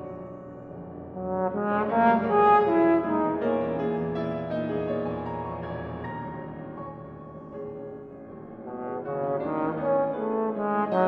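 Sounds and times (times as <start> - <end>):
grand piano accompaniment: 0.0 - 11.0
bass trombone playing: 1.1 - 4.2, 8.7 - 11.0.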